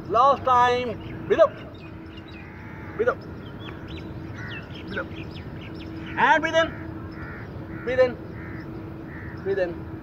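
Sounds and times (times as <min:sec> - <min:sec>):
birds chirping: 0:00.0 - 0:10.0.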